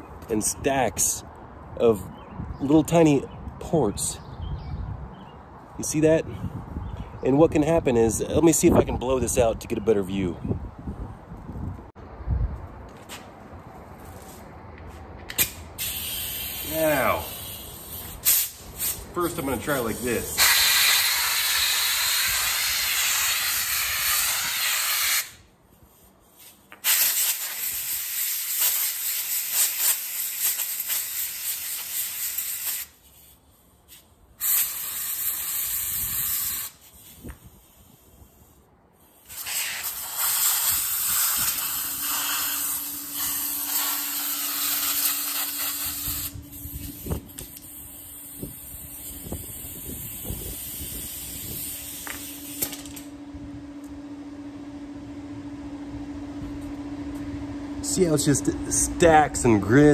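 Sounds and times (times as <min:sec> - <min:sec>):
air blow gun hissing: 0:15.8 - 0:53.0
steady low hum: 0:32.9 - 0:59.9.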